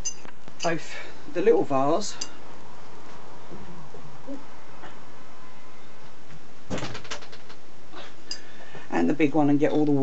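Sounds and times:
steady low hiss: 0.0s - 10.0s
knocks and clatters: 6.7s - 7.6s.

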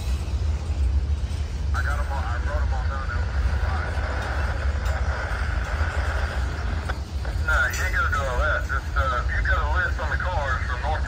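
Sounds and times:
train wheels rumbling on rails: 0.0s - 11.0s.

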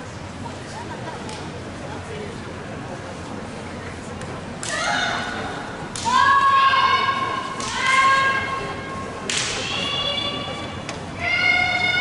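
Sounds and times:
sharp high-pitched shout: 6.0s - 8.6s, 9.6s - 12.0s.

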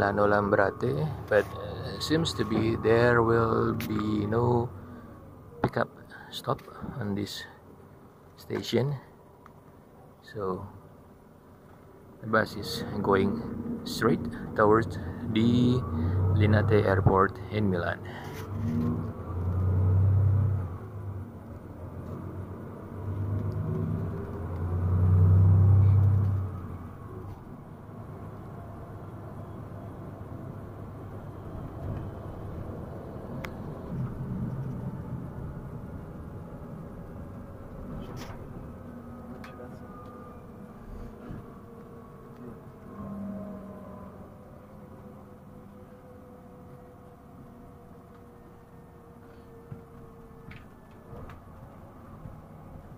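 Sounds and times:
bus engine rumble: 0.0s - 8.6s, 12.2s - 52.9s.

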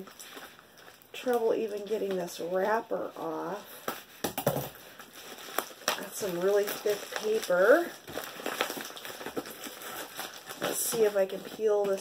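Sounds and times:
mailer wrapper crinkling: 0.0s - 12.0s.

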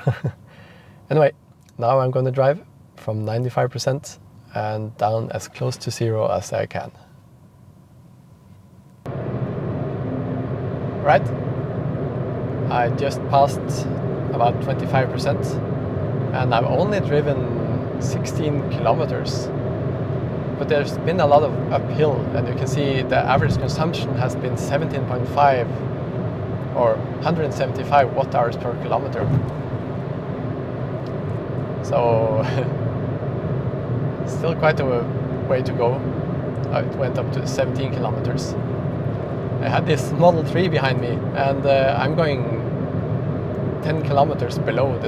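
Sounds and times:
man talking: 1.1s - 7.0s, 11.0s - 11.3s, 12.7s - 15.6s, 16.4s - 19.5s, 20.6s - 25.7s, 26.7s - 29.5s, 31.8s - 32.8s, 34.3s - 36.0s, 36.6s - 38.6s, 39.6s - 42.7s, 43.8s - 45.0s
car road and wind noise: 9.0s - 45.0s.

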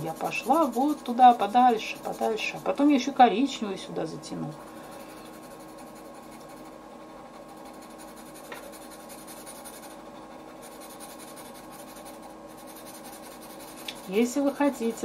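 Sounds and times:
pencil shading on paper: 0.0s - 3.0s, 4.5s - 15.0s.

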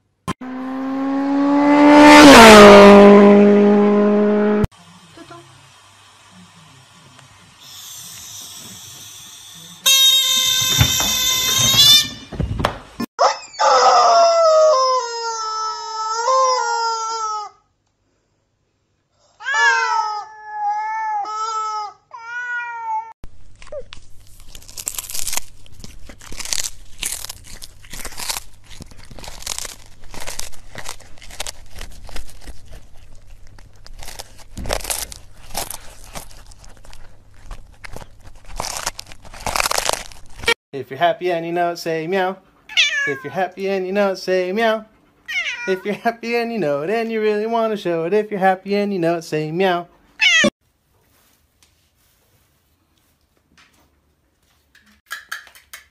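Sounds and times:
high steady squeal: 7.6s - 12.3s
cat meowing: 21.2s - 23.1s, 42.7s - 43.4s, 45.3s - 45.8s, 50.2s - 50.5s.

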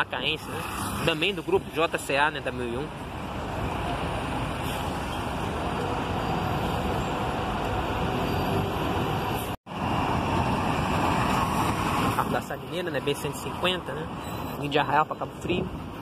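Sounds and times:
bus engines rumbling: 0.0s - 16.0s
street traffic: 0.0s - 16.0s.

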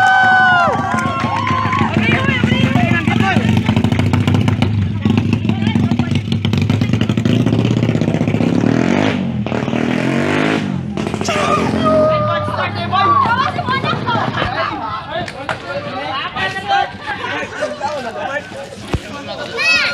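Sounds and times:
crowd voices: 0.0s - 8.4s, 10.7s - 19.9s
motorcycle engine revving: 0.8s - 15.0s.

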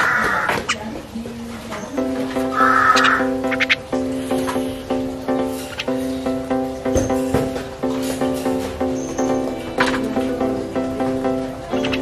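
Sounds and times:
harsh grating bird calls: 0.0s - 0.9s, 2.4s - 3.8s
background music with even pulse: 1.8s - 12.0s.

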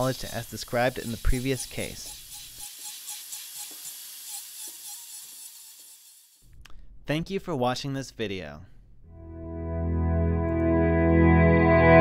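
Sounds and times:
dental drill hissing: 0.0s - 6.4s.

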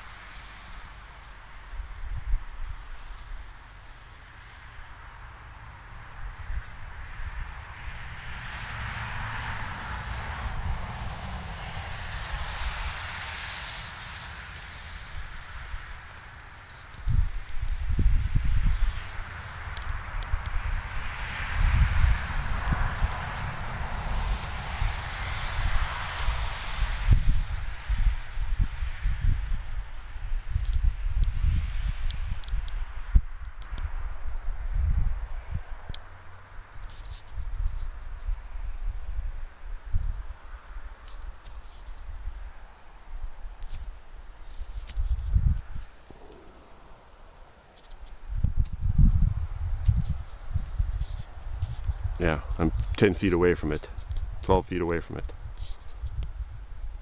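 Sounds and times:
wind buffeting on microphone: 0.0s - 3.5s, 16.8s - 57.0s
wind gusting through dry grass: 0.0s - 57.0s.

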